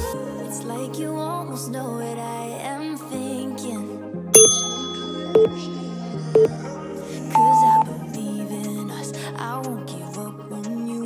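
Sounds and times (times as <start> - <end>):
background music: 0.0 - 11.0
bright ringing ding: 4.4 - 5.6.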